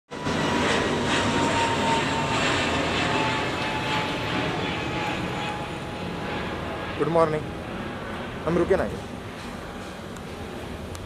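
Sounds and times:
traffic rumble and hiss: 5.7 - 11.0.

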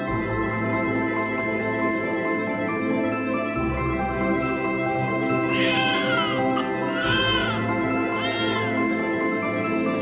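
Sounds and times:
background music: 0.0 - 10.0
newborn baby crying: 5.1 - 9.0.

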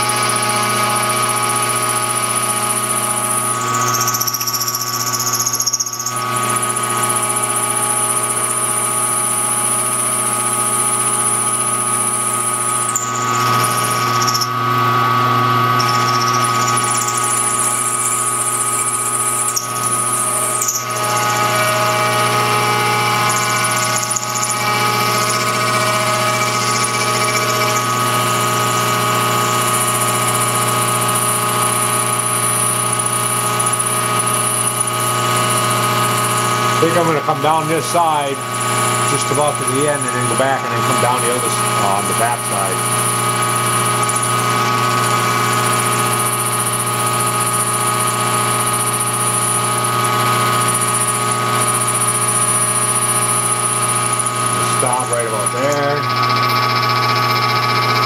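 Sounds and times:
milling machine whine: 0.0 - 58.0.

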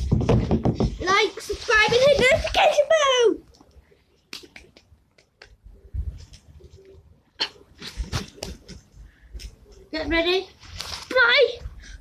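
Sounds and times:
clothing rustling: 0.0 - 2.9, 7.7 - 11.5
child yelling: 1.9 - 3.4.

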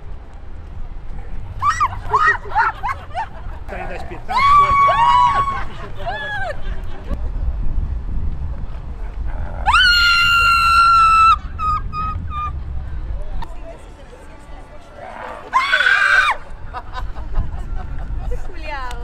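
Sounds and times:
low street rumble: 0.0 - 19.0.

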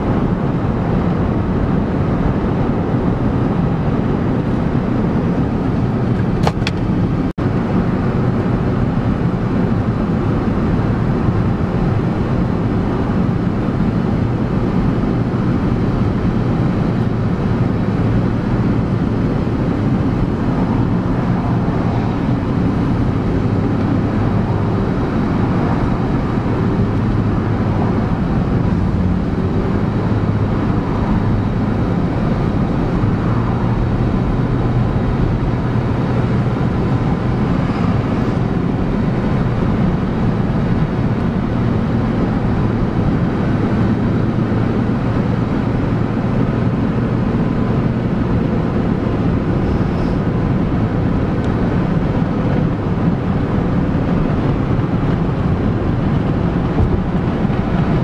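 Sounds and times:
car road noise and engine hum: 0.0 - 58.0.

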